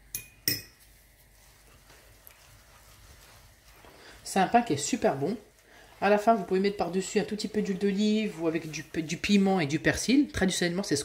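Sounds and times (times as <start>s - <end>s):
metal spoon clinking on saucer: 0.0s - 0.9s.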